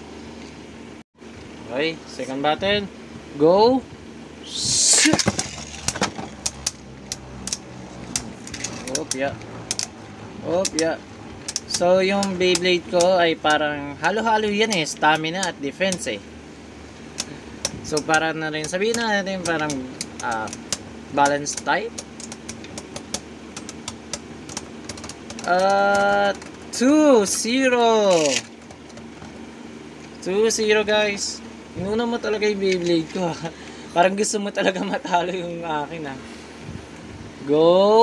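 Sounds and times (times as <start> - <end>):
spinning tops whirring: 4.6 - 10.0
tops clacking: 17.2 - 26.8.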